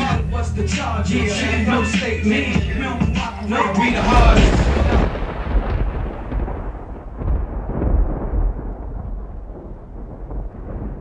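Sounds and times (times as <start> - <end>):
low thunder-like rumble: 3.9 - 11.0.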